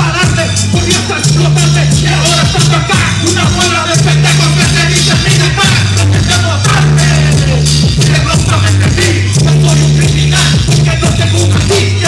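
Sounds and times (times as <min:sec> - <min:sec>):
heavy bass line: 0:00.0 - 0:12.0
kick drum beat: 0:00.0 - 0:12.0
rapped vocals: 0:00.0 - 0:12.0.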